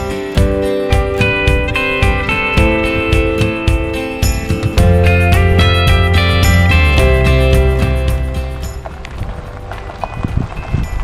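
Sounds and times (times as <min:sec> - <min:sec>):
vehicle engine and tyre rumble: 0:00.0 - 0:11.0.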